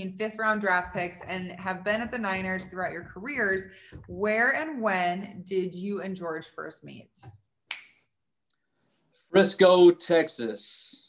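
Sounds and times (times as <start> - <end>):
person speaking: 0.6 - 4.6.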